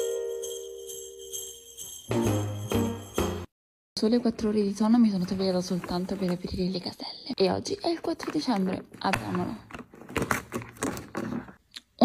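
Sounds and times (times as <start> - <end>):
cardboard clicking and cracking: 8.2 - 11.6.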